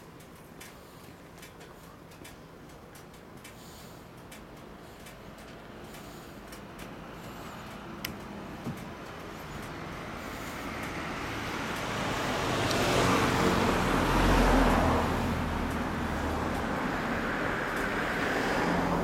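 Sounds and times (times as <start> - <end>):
road traffic: 0.0 - 19.0
vehicle engine running: 0.0 - 19.0.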